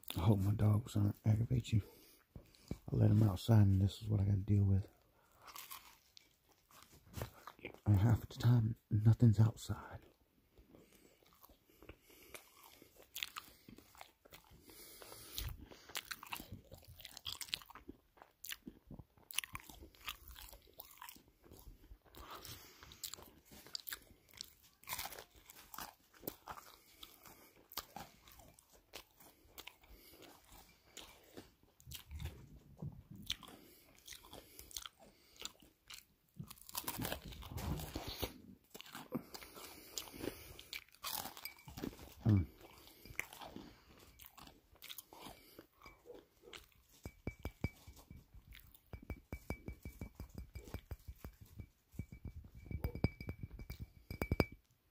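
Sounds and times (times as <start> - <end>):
chewing crispy pizza: 0.0 - 3.2, 4.8 - 8.6, 9.2 - 47.2, 47.8 - 48.9.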